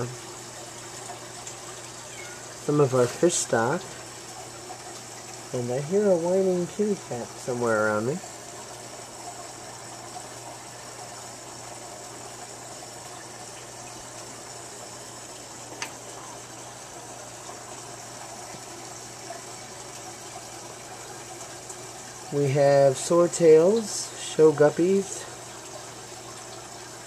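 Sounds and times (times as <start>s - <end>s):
aquarium water bubbling: 0.0s - 27.0s
low hum of filter: 0.0s - 27.0s.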